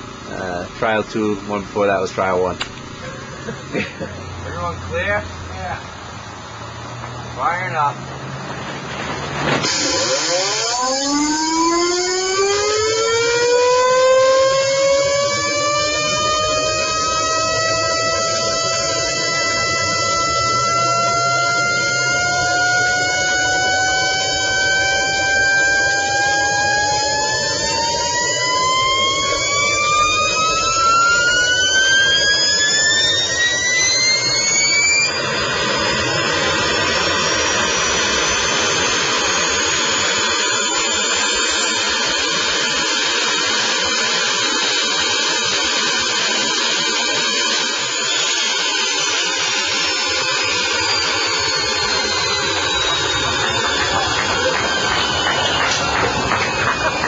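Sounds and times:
jet engine whine: 0.0s - 57.0s
rushing noise with high whistles: 0.0s - 57.0s.

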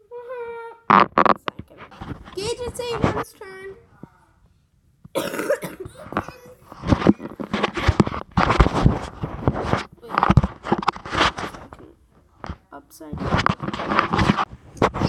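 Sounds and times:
phone handling rubbing and thumps: 0.9s - 3.2s, 5.9s - 11.8s, 12.5s - 15.0s
person coughing: 5.1s - 6.7s.

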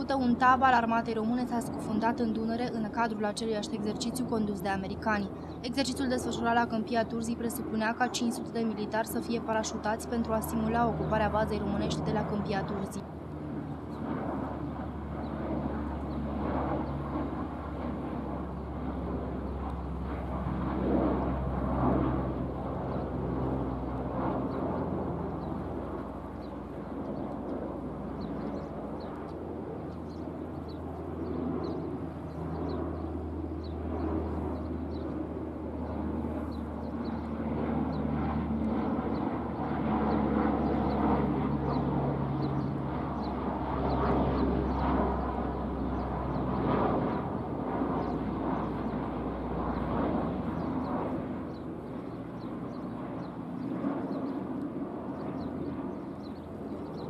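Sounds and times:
propeller plane flying over: 0.0s - 57.0s.

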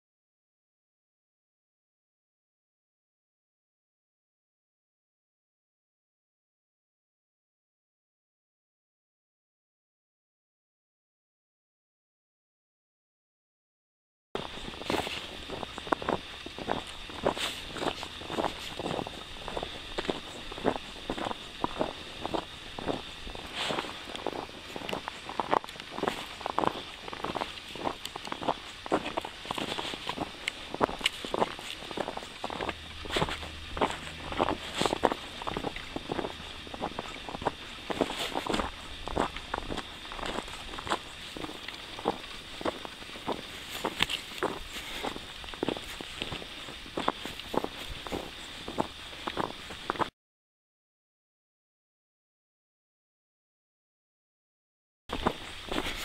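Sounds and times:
footsteps crunching on snow: 14.4s - 50.1s, 55.1s - 56.0s.

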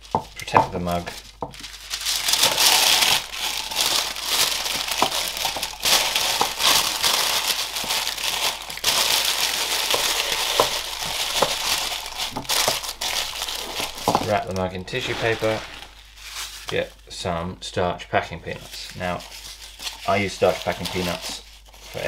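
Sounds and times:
tissue paper rustling: 0.8s - 16.8s, 18.6s - 22.0s.

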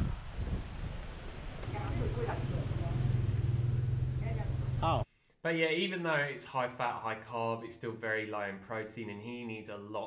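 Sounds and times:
vehicle engine idling: 1.6s - 5.0s.

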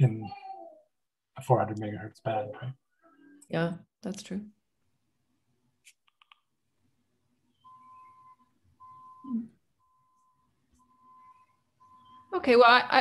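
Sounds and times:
electronic beeping: 7.6s - 12.3s.

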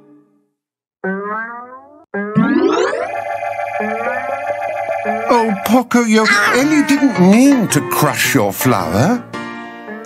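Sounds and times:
cartoon music note: 6.2s - 8.0s.

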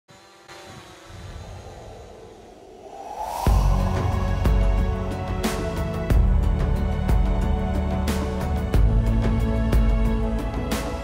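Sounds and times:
drone propellers whining: 0.2s - 9.0s.

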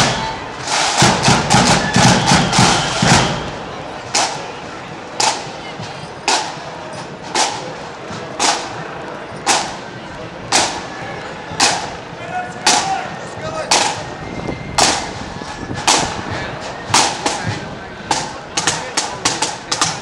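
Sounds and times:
crowd chatter: 0.0s - 20.0s
marching band drums: 0.0s - 20.0s.

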